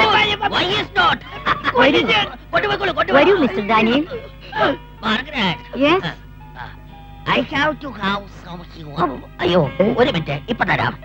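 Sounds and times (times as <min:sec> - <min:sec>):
man speaking animatedly: 0:00.0 - 0:04.0
soft background music: 0:00.0 - 0:11.0.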